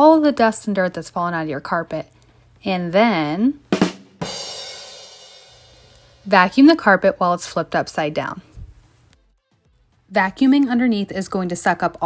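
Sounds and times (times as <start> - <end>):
cymbal crash: 3.9 - 6.3.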